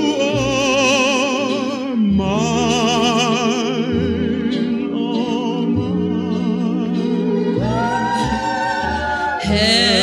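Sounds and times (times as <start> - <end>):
musical accompaniment: 0.0 - 10.0
singing with fast vibrato: 0.0 - 10.0.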